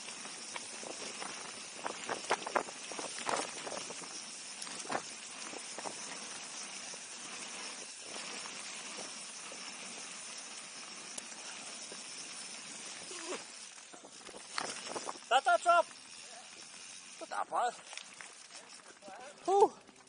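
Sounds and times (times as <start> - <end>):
bike tyres rushing on dirt trail: 0.0 - 20.0.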